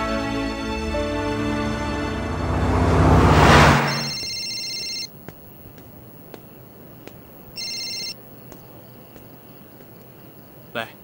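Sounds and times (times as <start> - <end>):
mobile phone beep: 3.8 - 5.1, 7.6 - 8.2.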